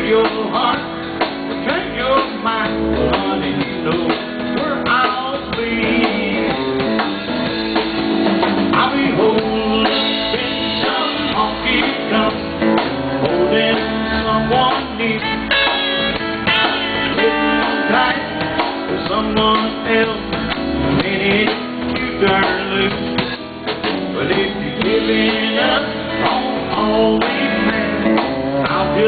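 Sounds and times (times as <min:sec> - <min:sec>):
live country band with guitar: 0:00.0 - 0:29.0.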